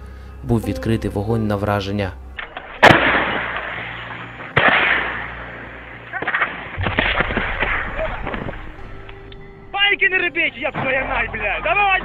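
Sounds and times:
sharp cracks: 0:02.4 - 0:09.2
shell explosions: 0:02.6 - 0:08.7.

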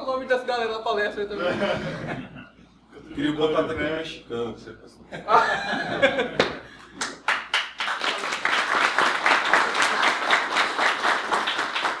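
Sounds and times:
audience applause: 0:06.4 - 0:12.0.

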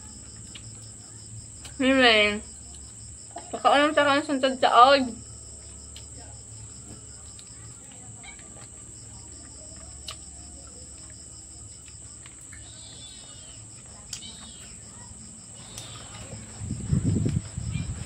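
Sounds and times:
crickets droning: 0:00.0 - 0:18.0
pulsing insect trill: 0:00.0 - 0:18.0
faint clicks: 0:15.6 - 0:16.3.

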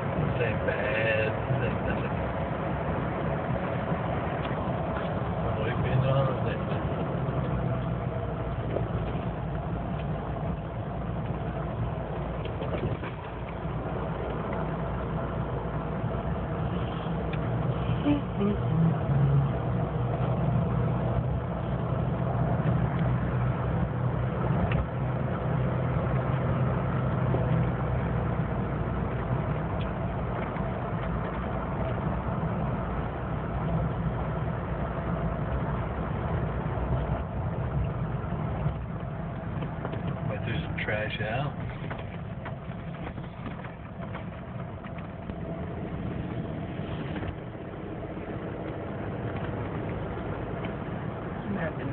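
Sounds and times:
car engine hum: 0:00.0 - 0:51.9
tyre and road noise: 0:00.0 - 0:51.9.

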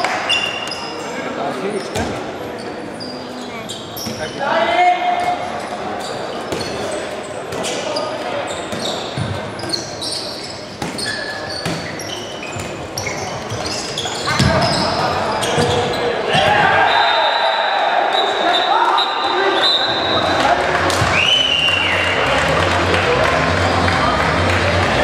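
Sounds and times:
sneakers squeaking: 0:00.0 - 0:04.6, 0:05.2 - 0:17.3, 0:18.1 - 0:22.3.

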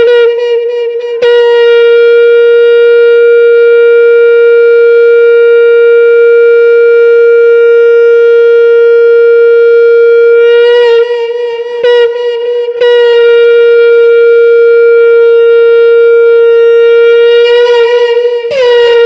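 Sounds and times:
conch shell blown: 0:00.0 - 0:19.0.

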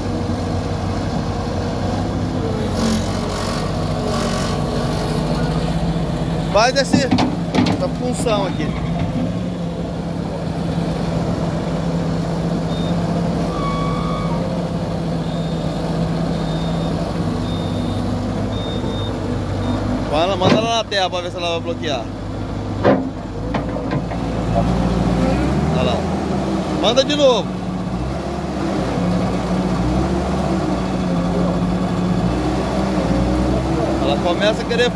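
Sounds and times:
diesel engine running: 0:00.0 - 0:34.9
short high beeps: 0:12.7 - 0:14.5.

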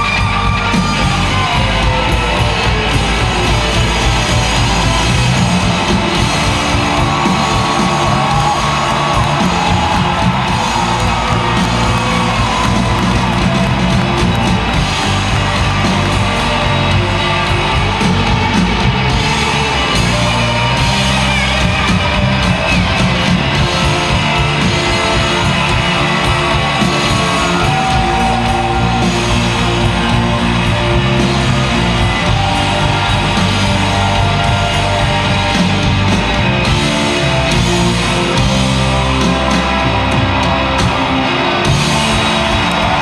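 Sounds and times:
audience whooping and cheering: 0:00.0 - 0:43.0
live rock band playing: 0:00.0 - 0:43.0.

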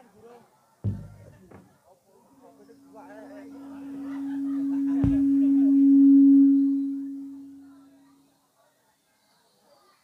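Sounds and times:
deep thump: 0:00.8 - 0:01.7, 0:04.3 - 0:06.5
low steady musical tone: 0:02.4 - 0:08.2.

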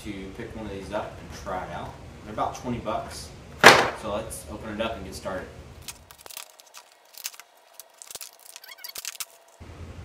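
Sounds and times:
plastic packaging crackling: 0:05.8 - 0:09.6
squeaky scrape: 0:08.3 - 0:09.4.

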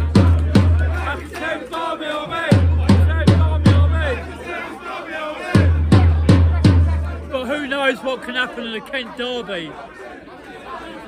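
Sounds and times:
bass drum beaten with mallets: 0:00.0 - 0:01.1, 0:02.5 - 0:04.2, 0:05.6 - 0:07.2
football supporters chanting: 0:00.0 - 0:11.0.

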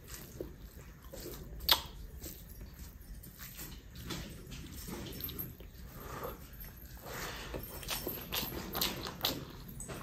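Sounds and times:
wet chewing: 0:00.0 - 0:10.0.

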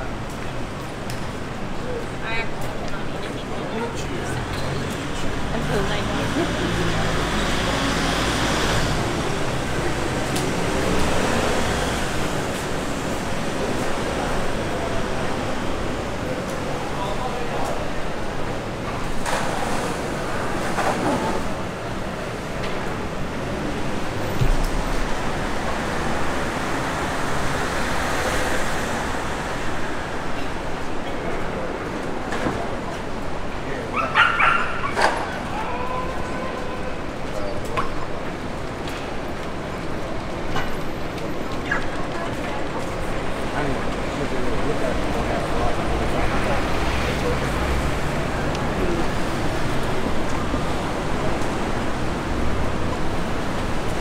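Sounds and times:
street noise: 0:00.0 - 0:54.0
traffic: 0:00.0 - 0:54.0.

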